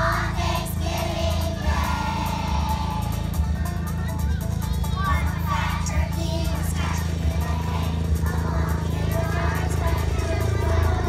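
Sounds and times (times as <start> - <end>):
young children singing: 0.0 - 3.3, 4.8 - 11.0
song with steady bass beat: 0.0 - 11.0.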